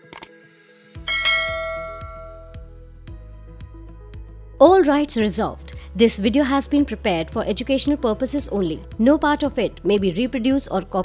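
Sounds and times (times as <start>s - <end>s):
bell-like chime: 1.0s - 2.6s
soft outro music: 1.0s - 3.9s.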